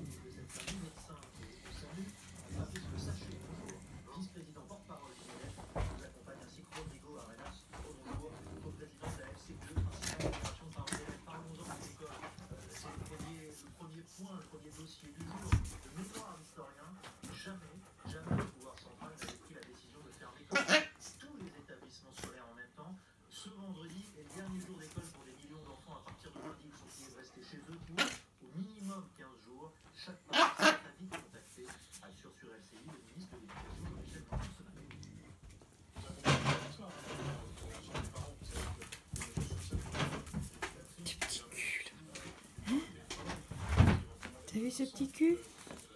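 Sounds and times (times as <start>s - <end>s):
dogs moving: 0.0s - 22.4s, 29.9s - 45.9s.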